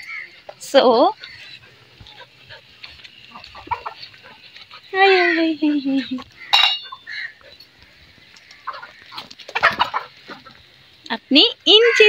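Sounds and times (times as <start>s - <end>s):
chickens clucking: 0.0s - 11.1s.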